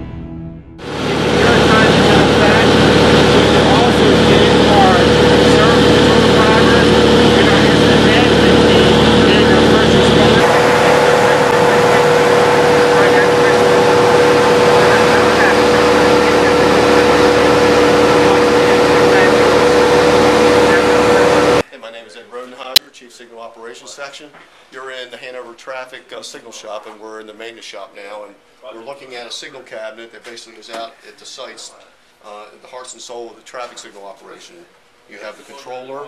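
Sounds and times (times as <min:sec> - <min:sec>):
airplane propeller engine drone: 0:00.8 - 0:21.6
constant hum: 0:00.8 - 0:21.6.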